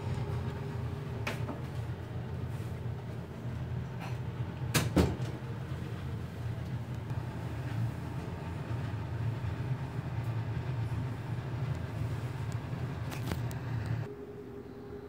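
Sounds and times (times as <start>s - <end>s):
low room noise drone: 0.0s - 15.0s
faint high hum: 7.1s - 15.0s.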